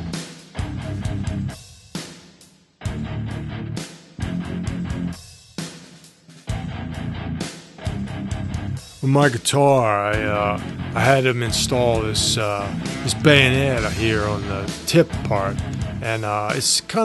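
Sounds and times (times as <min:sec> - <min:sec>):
electric guitar chords: 0:00.0 - 0:01.6, 0:02.9 - 0:05.2, 0:06.5 - 0:08.8, 0:10.0 - 0:17.0.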